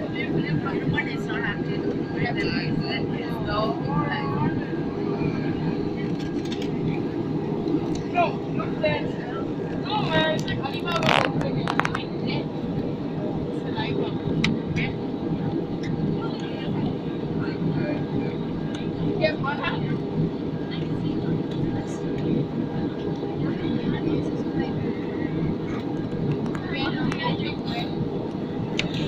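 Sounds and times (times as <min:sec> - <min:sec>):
airliner cabin engine rush: 0:00.0 - 0:29.0
faint passenger voices: 0:00.0 - 0:29.0.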